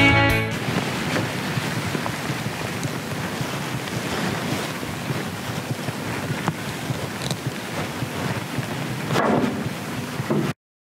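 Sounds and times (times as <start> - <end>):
steady rushing noise: 0.3 - 10.6.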